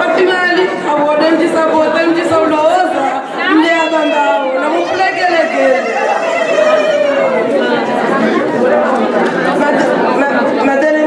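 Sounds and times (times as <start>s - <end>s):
many voices chattering: 0.0s - 11.0s.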